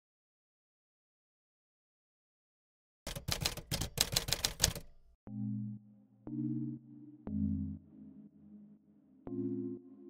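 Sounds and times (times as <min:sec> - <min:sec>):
typewriter key strikes: 0:03.1 - 0:05.0.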